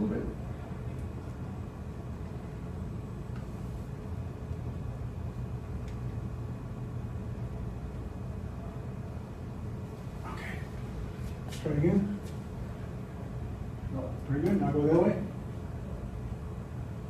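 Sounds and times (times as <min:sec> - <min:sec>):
low rumble of room noise: 0:00.0 - 0:17.0.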